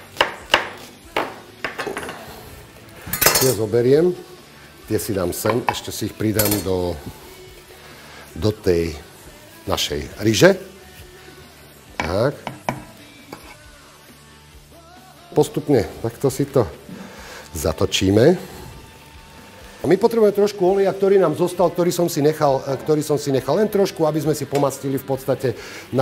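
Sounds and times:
knife chopping on wooden board: 0.2 - 1.4
cutting board tapping metal pot: 12.0 - 12.9.

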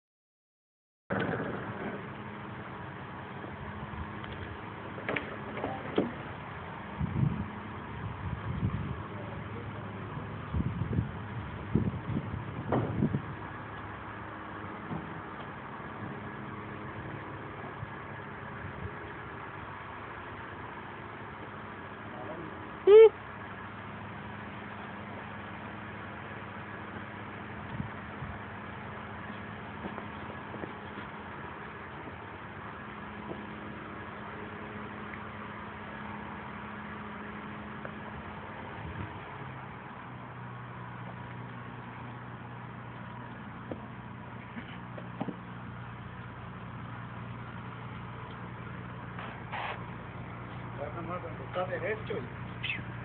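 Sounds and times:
engine humming: 1.1 - 53.0.

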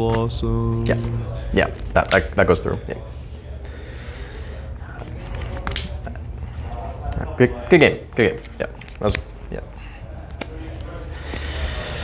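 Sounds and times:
low room hum: 0.0 - 12.0
cards clicking and rustling: 4.9 - 6.0, 8.2 - 9.5.

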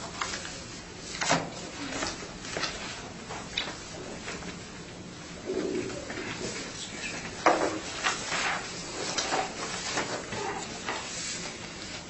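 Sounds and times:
papers being leafed through: 0.0 - 12.0.

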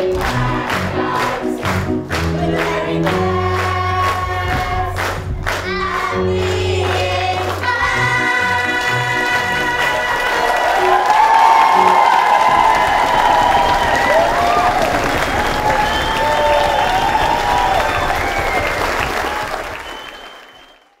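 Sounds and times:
audience applauding: 0.0 - 21.0
cheering voices: 5.6 - 21.0.

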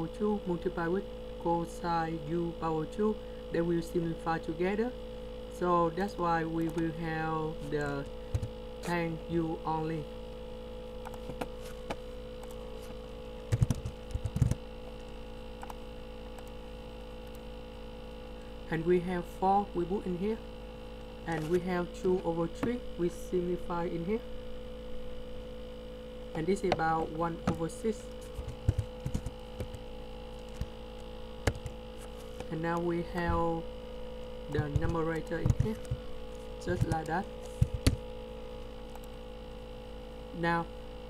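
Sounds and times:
electrical mains hum: 0.0 - 41.0
keyboard clicks: 13.5 - 14.6, 28.4 - 29.8
computer keys clicking: 13.5 - 16.6, 28.4 - 29.8, 31.4 - 31.8, 34.5 - 36.0, 36.7 - 38.0, 38.9 - 39.2.

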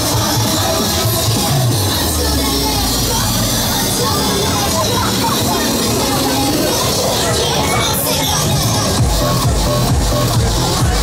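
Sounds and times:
crowd noise: 0.0 - 11.0
fairground music: 0.0 - 11.0.

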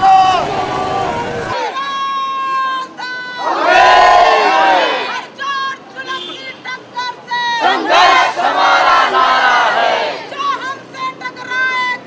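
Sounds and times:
crowd shouting in unison: 0.0 - 2.1, 3.0 - 5.4, 7.6 - 10.4.

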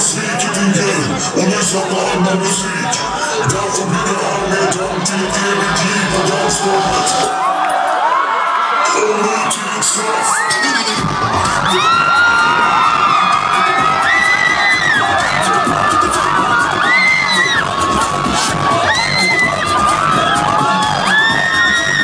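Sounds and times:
crowd cheering and shouting: 0.0 - 22.0
loud live music: 0.0 - 22.0.

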